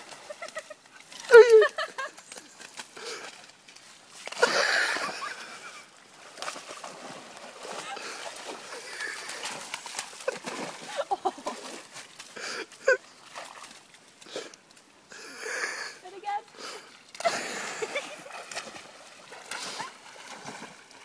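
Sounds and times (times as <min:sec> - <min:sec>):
dog splashing in water: 0:06.2 - 0:12.3, 0:17.2 - 0:21.0
loud splash of dog jumping: 0:09.4 - 0:11.8.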